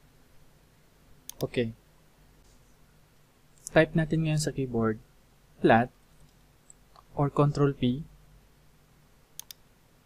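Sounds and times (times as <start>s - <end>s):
mouse button clicks: 9.4s - 9.6s.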